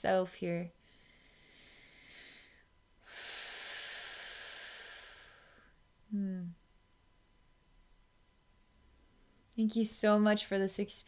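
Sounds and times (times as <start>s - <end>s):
woman breathing deeply: 0.8s - 5.8s.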